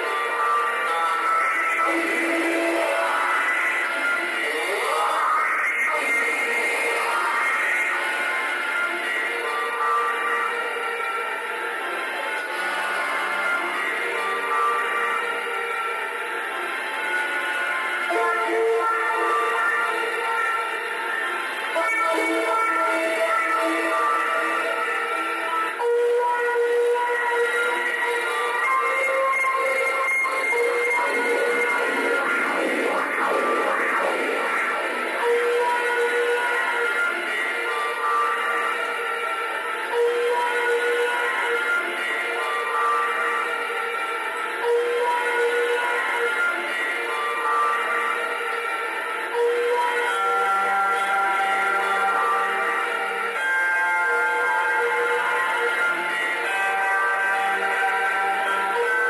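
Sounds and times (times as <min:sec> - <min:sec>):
electric bass through effects: 0:29.7 - 0:38.4.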